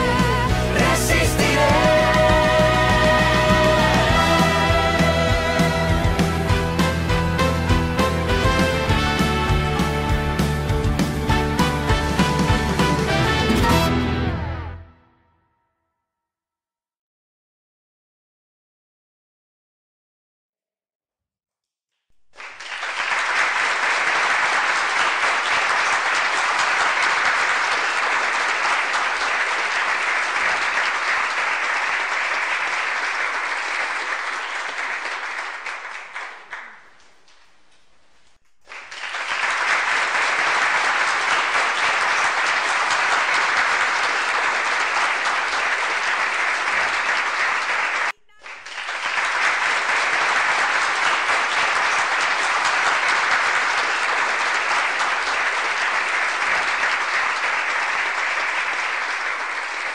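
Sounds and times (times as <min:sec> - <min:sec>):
applause: 0:00.0 - 0:14.8, 0:22.2 - 0:59.9.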